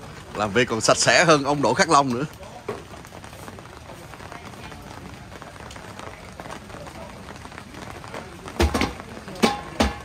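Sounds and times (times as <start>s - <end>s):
rain pattering on paving: 0.0s - 10.0s.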